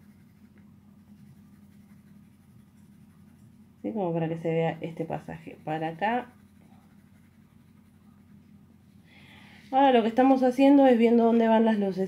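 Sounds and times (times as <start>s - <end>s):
pencil scratching on paper: 0.0s - 3.6s, 4.2s - 8.5s.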